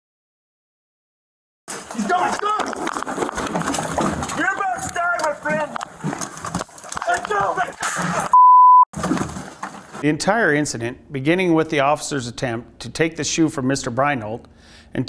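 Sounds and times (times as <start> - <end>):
raised voices talking: 1.7 - 2.9, 4.2 - 5.8, 7.0 - 8.3
censor bleep: 8.3 - 8.9.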